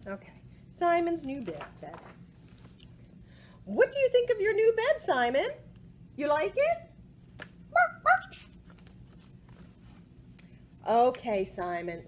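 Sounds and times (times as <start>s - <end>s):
person imitating dog barking: 7.7s - 8.4s.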